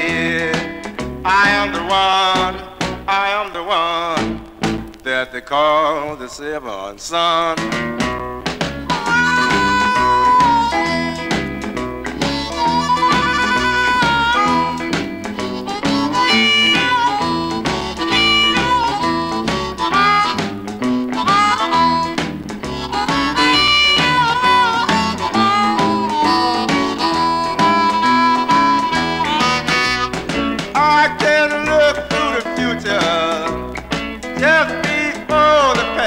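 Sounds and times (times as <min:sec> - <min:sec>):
blues harmonica solo: 0:00.0 - 0:02.6, 0:07.7 - 0:36.0
guitars piano and drums: 0:00.0 - 0:05.3, 0:07.2 - 0:36.0.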